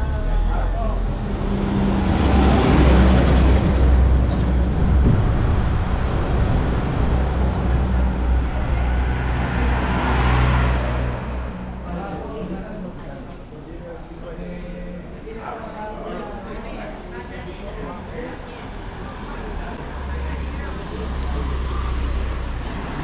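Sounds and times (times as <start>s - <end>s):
traffic noise: 0.0s - 23.0s.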